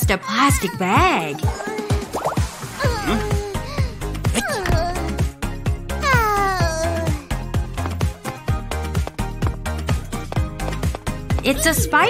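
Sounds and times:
upbeat background music: 0.0 - 12.0
cartoon child whining cry: 2.8 - 5.2, 6.0 - 7.3.

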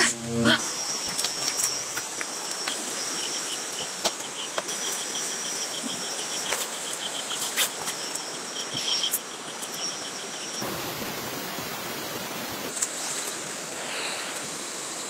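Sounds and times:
crickets trilling: 0.0 - 12.7
insects chirping: 0.0 - 12.7
constant hiss: 0.0 - 15.0.

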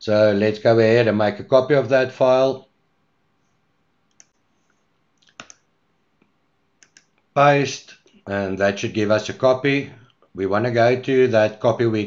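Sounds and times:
computer mouse clicks: 4.1 - 7.2.

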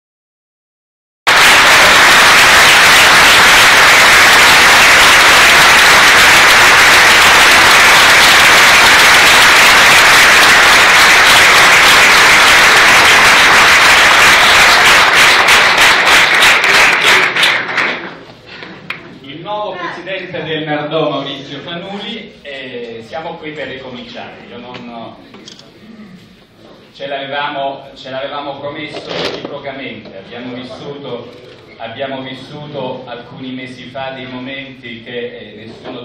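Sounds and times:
audience applause: 1.3 - 18.2.

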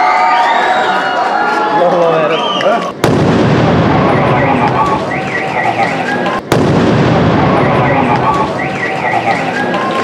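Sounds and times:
loud explosion blast: 3.0 - 5.6, 6.4 - 9.0
dense sustained noise: 3.0 - 10.0
car alarm wailing: 4.1 - 6.0, 7.6 - 9.4.

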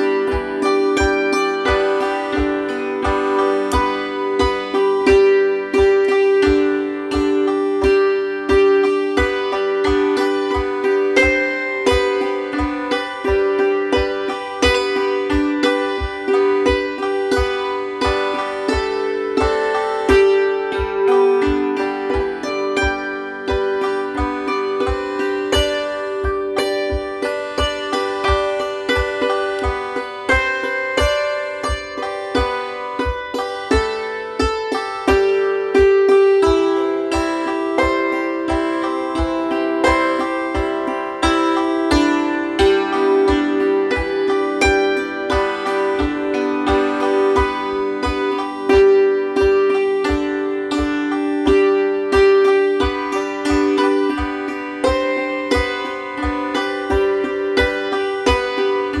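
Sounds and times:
hammered dulcimer chords: 0.0 - 59.0
steady low beat: 14.0 - 35.2.

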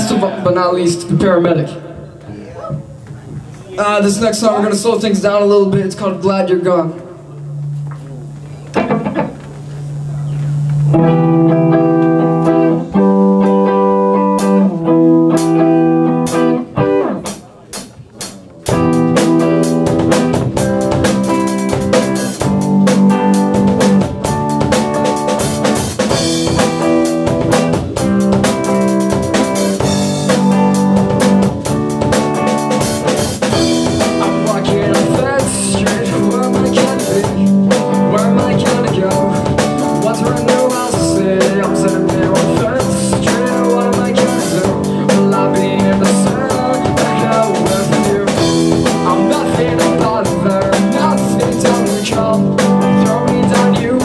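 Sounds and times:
electric guitar chords: 4.7 - 54.0
rock band playing: 7.3 - 54.0.

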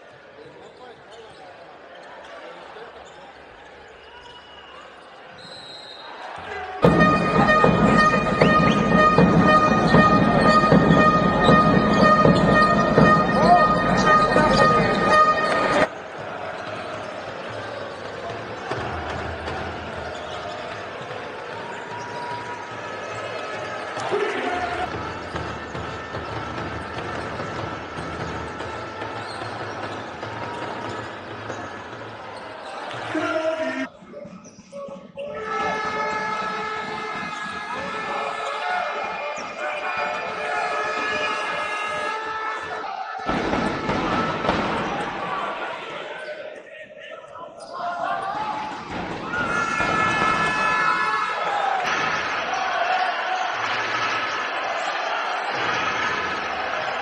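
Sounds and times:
arena crowd noise: 0.0 - 57.0
basketball bouncing on court: 6.4 - 15.9, 24.8 - 32.2, 43.3 - 45.1
steady pitched tones: 6.8 - 15.9.

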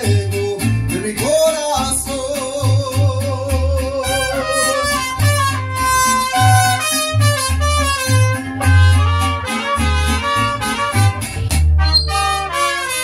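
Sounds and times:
mariachi band playing: 0.0 - 13.0.

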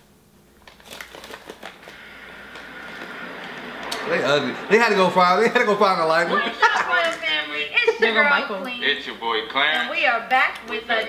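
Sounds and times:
steady low hiss: 1.5 - 11.0.

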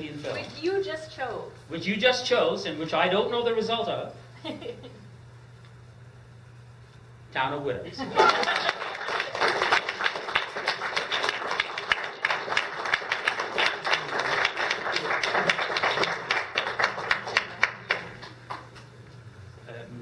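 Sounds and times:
audience applauding: 8.2 - 18.8.

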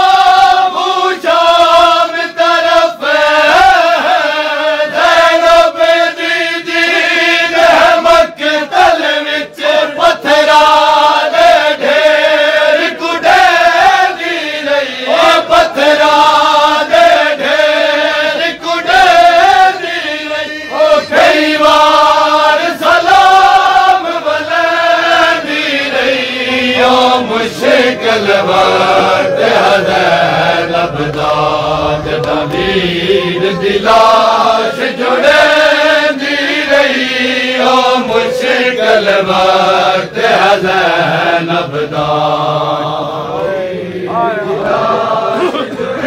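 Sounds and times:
crowd of men chanting: 0.0 - 46.0
chest-beating slaps: 32.1 - 32.6.

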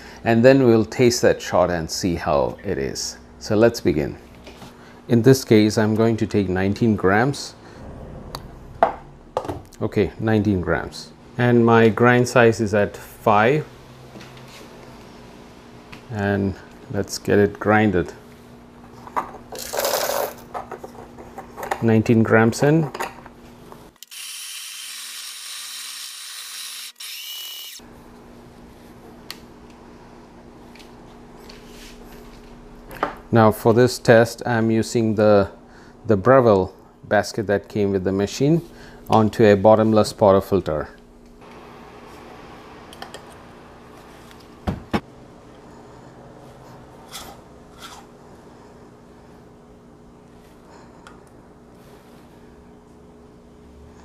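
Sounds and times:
coffee grinder running: 19.5 - 20.4, 24.0 - 27.8
faint steady hum: 27.7 - 54.0.

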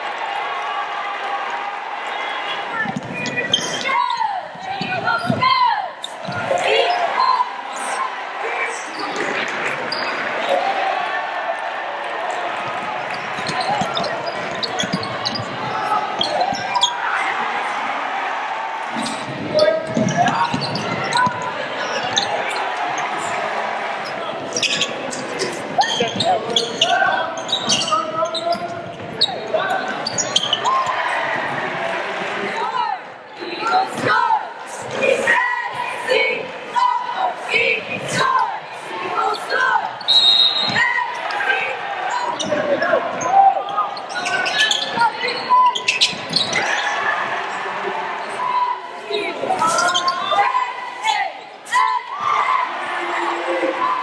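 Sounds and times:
crowd and player shouts: 0.0 - 54.0.

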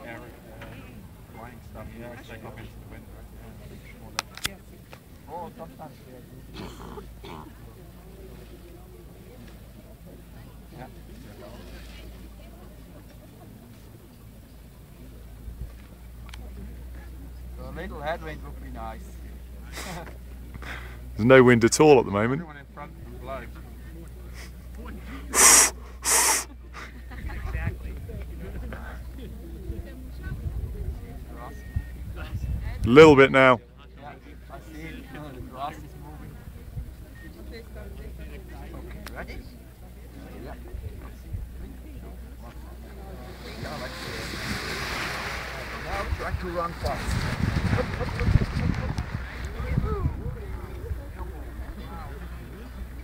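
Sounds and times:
loud breaths: 24.4 - 26.9
indistinct voices talking: 25.3 - 26.9.

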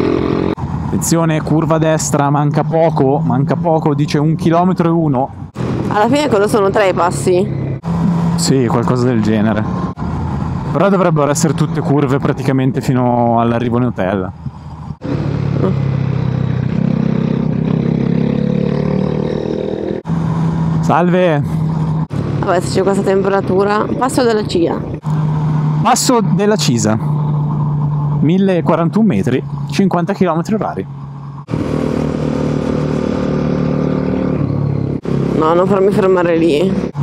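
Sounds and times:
motorcycle engine accelerating: 0.0 - 11.8, 14.4 - 37.0.

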